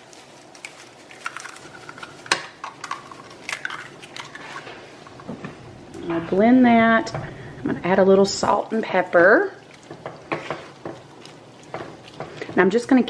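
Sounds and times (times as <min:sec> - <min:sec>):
eggs cracking into skillet: 0:00.6 - 0:05.2
wooden spoon knocking pan: 0:09.8 - 0:11.1.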